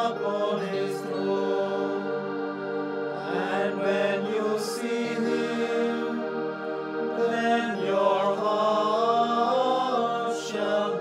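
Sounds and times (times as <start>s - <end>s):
slow chant in held notes: 0.0s - 11.0s.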